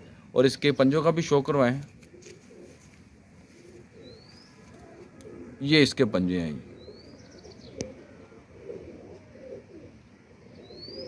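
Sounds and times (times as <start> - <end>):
pigeons cooing: 1.9 - 11.0.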